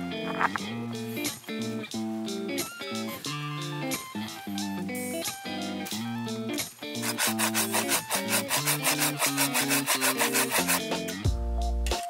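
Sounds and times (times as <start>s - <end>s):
background music: 0.0s - 12.0s
pruning saw cutting branch: 7.0s - 10.9s.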